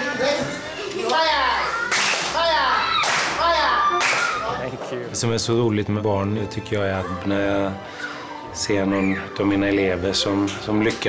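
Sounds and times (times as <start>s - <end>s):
children's group voices: 0.0s - 4.6s, 6.8s - 9.7s
children clapping: 1.8s - 4.5s.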